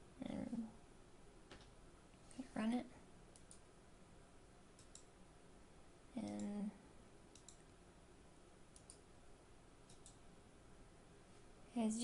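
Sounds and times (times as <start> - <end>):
computer mouse clicks: 3.3 - 3.7, 4.8 - 5.1, 6.2 - 6.6, 7.3 - 7.8, 8.7 - 9.1, 9.8 - 10.2.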